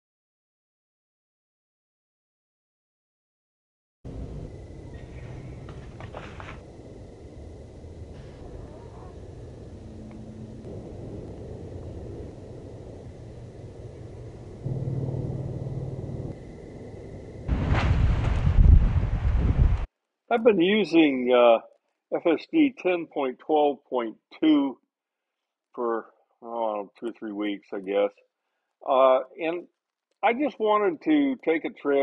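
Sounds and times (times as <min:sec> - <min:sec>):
loud thunder peal: 0:04.1 - 0:19.9
thunder rumbling: 0:04.1 - 0:21.4.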